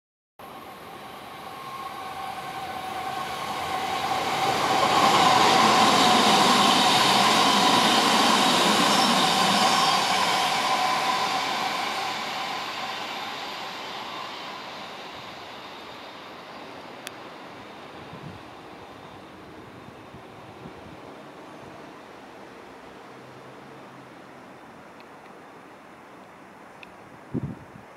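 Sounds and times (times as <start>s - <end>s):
electric train passing: 0.4s - 26.6s.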